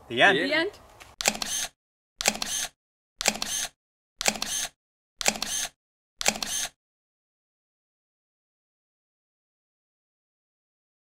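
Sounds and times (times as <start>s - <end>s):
camera shutter clicks: 1.2s - 6.8s.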